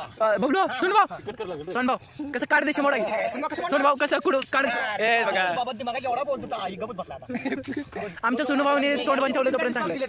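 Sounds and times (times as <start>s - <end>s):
cricket trill: 0.0s - 10.0s
men talking: 0.0s - 10.0s.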